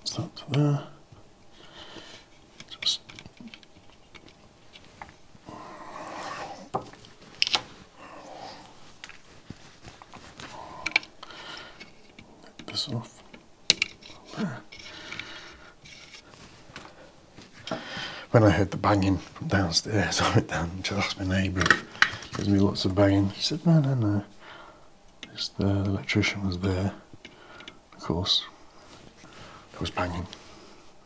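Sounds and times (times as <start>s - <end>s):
small clicks and taps of components: 2.6s - 5.2s, 13.3s - 15.3s, 27.2s - 27.8s.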